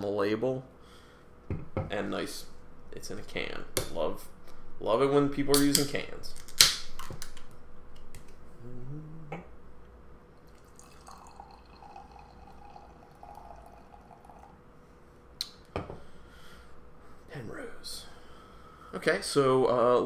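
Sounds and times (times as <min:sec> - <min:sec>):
short voice hum: 0:08.5 - 0:09.6
liquid pouring and fizzing: 0:10.4 - 0:14.6.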